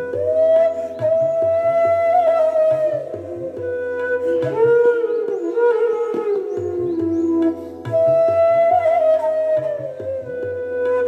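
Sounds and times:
bamboo flute sustained note: 0.0s - 11.0s.

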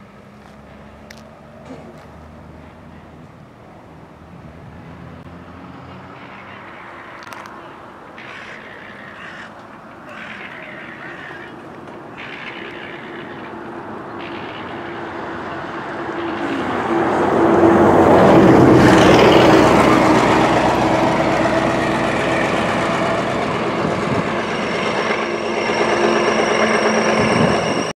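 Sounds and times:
engine approaching: 0.0s - 27.9s
heavy vehicle engine passing: 0.5s - 9.3s, 11.3s - 27.9s.

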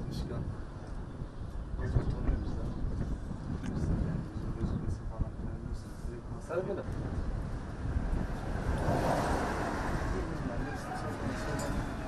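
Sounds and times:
faint indistinct voices: 10.0s - 12.0s.

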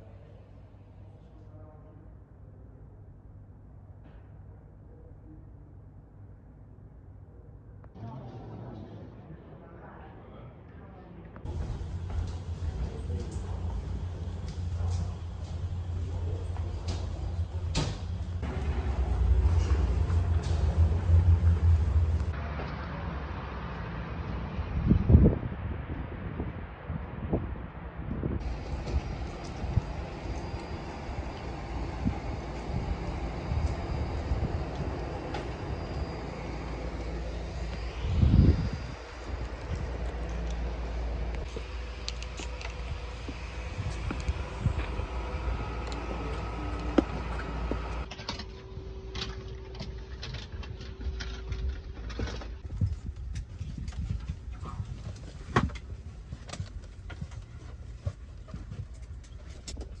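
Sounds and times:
aircraft and equipment rumble: 11.4s - 60.0s
wind buffeting microphone: 24.6s - 48.1s, 52.6s - 60.0s.

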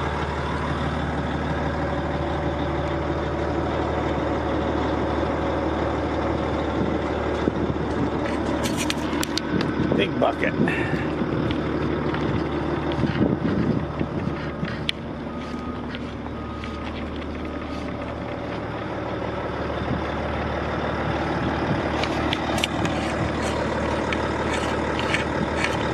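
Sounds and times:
diesel engine idling: 0.0s - 25.9s.

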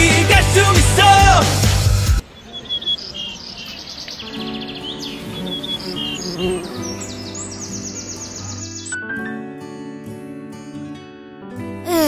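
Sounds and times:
soft instrumental music: 0.0s - 12.0s
songbirds chirping: 2.1s - 9.3s.

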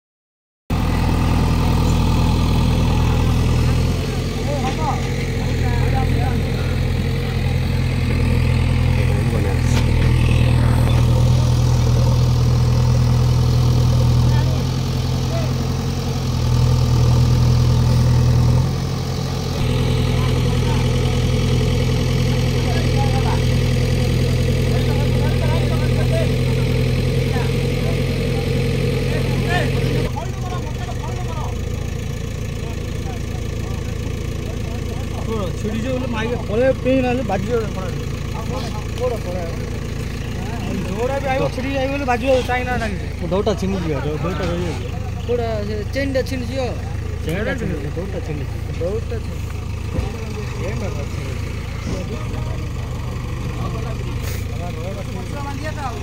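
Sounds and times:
diesel engine running: 0.7s - 56.0s
faint voices: 1.4s - 56.0s.

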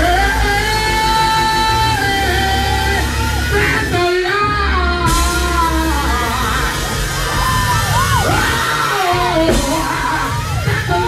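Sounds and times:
instrumental accompaniment: 0.0s - 10.5s
sharp hit: 9.5s - 10.2s.

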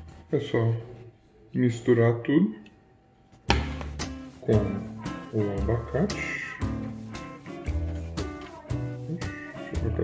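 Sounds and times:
background music with beat: 3.5s - 10.0s.

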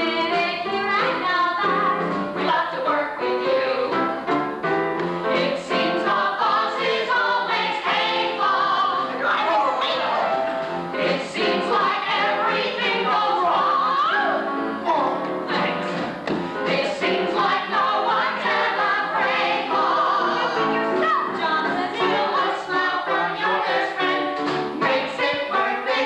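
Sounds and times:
men and women singing in chorus: 5.2s - 10.3s, 10.9s - 26.0s.

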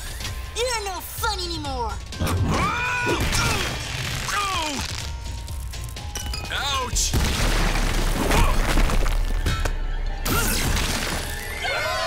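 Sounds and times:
rocks falling and smashing: 7.0s - 9.7s.

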